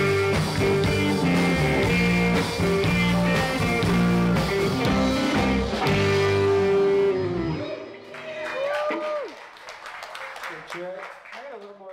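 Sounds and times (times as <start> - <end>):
guitar note sliding down: 0.0 - 8.2
rock band playing: 0.0 - 8.6.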